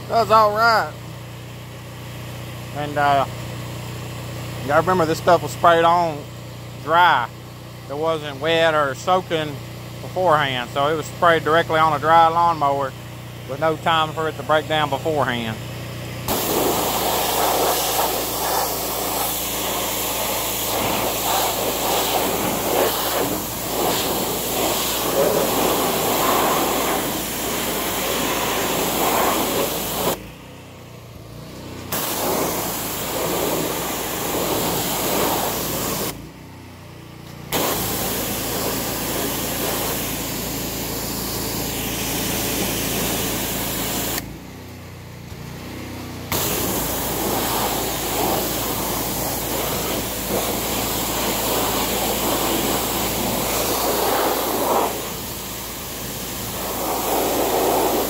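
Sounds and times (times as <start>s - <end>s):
pressure washer spray hissing: 16.3s - 30.2s, 31.9s - 36.2s, 37.5s - 44.3s, 46.3s - 58.0s.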